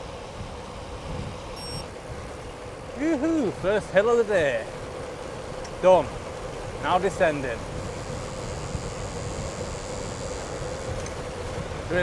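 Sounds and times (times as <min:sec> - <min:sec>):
thin high whine: 0:00.0 - 0:02.0, 0:06.9 - 0:12.0
bike tyres on tarmac: 0:00.0 - 0:12.0
wind rushing over microphone: 0:00.0 - 0:12.0.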